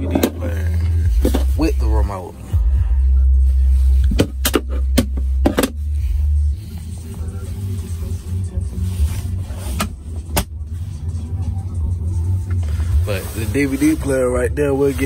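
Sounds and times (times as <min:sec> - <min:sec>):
bass-heavy music from car stereo: 0:00.0 - 0:15.0.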